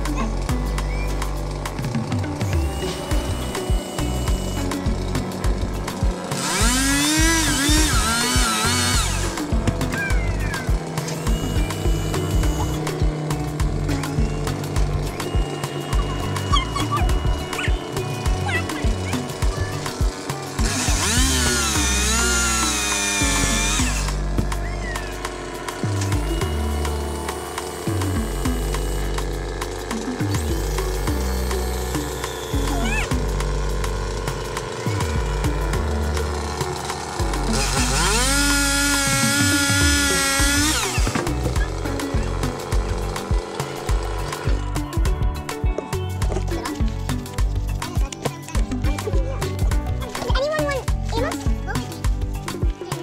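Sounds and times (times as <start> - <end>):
background music with bass beat: 0.0 - 53.0
chainsaw cutting: 0.0 - 53.0.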